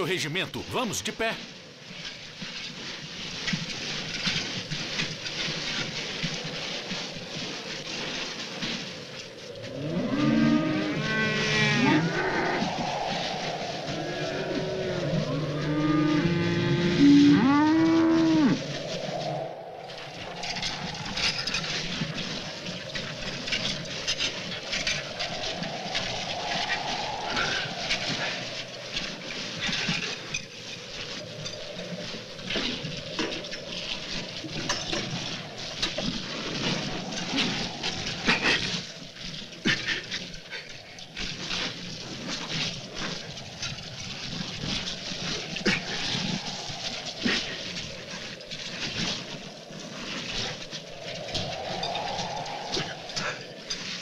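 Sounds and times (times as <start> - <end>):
storm wind: 0.0 - 54.0
crunches and knocks of movement: 1.7 - 10.2, 12.8 - 54.0.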